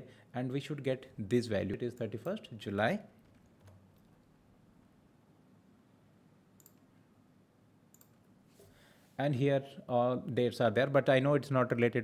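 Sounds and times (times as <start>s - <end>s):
faint computer mouse clicks: 6.6s - 6.9s, 7.9s - 8.2s.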